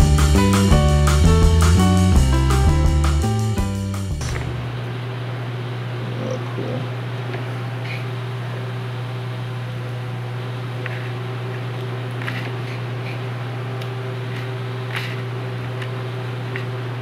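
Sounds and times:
low hum: 4.0s - 17.0s.

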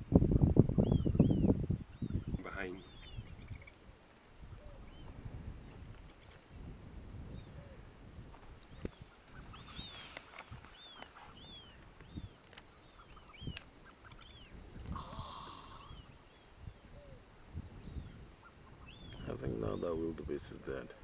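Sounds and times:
bird chirping: 0.4s - 3.8s, 4.4s - 5.2s, 8.6s - 21.0s.

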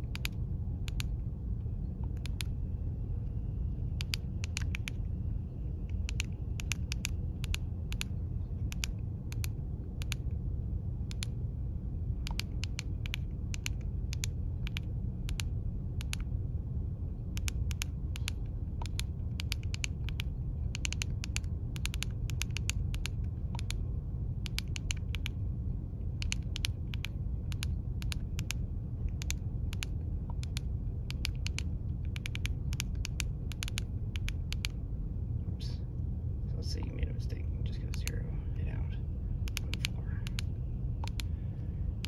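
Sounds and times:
low rumble: 0.0s - 42.0s.

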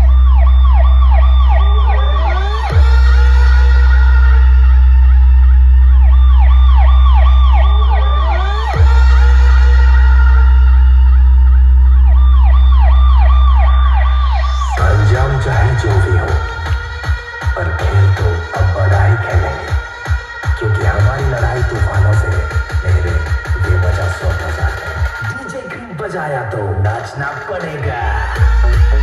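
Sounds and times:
siren-like wailing tones: 0.0s - 25.8s
heavy sub-bass: 0.0s - 25.9s, 26.6s - 29.0s
electronic beat: 0.0s - 29.0s.

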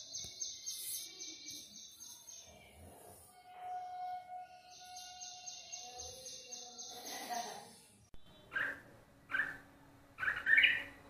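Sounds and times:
bulbul calling: 10.2s - 10.9s.

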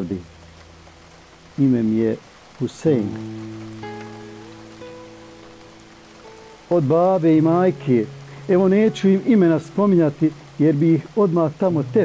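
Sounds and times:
faint steady hiss: 0.0s - 12.0s
soft background music: 0.0s - 12.0s.

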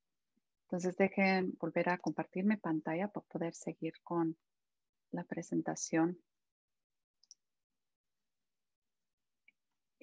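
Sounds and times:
computer mouse clicks: 7.2s - 7.5s.

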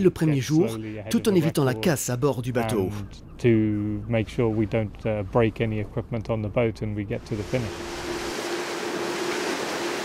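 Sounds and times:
man speaking: 0.0s - 7.7s
faint steady hum: 0.0s - 10.0s.

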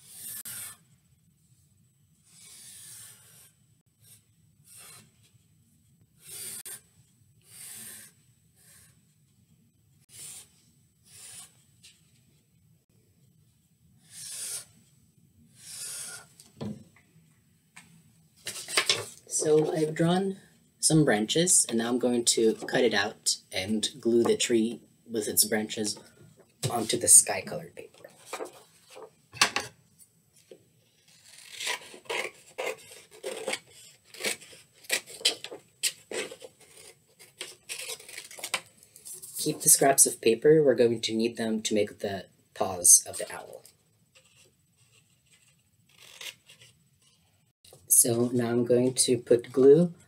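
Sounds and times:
marker scratching on paper: 0.0s - 0.8s, 2.3s - 5.1s, 6.2s - 6.8s, 10.1s - 11.6s, 14.1s - 14.7s
paper crackling: 27.8s - 29.2s
scissors cutting paper: 31.1s - 38.7s, 44.2s - 47.2s.

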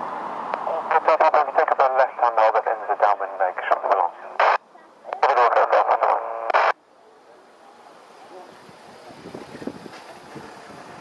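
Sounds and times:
voice over airband radio: 0.6s - 6.8s.

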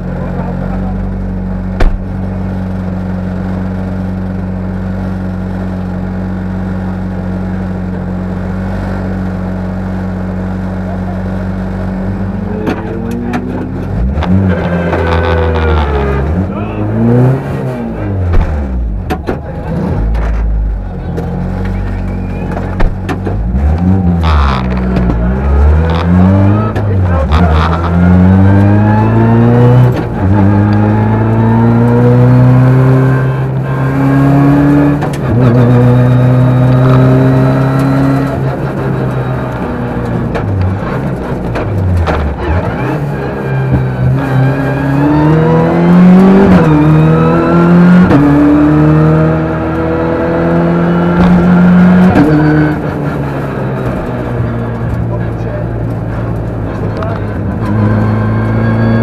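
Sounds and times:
rally car engine accelerating: 0.0s - 59.0s.

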